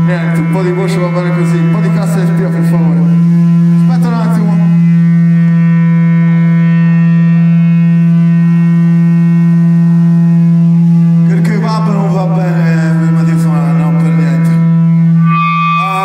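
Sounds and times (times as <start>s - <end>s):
loud low drone note: 0.0s - 16.0s.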